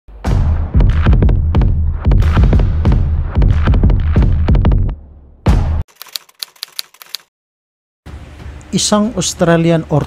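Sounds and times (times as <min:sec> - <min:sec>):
typewriter key clicks: 0:05.9 - 0:07.3.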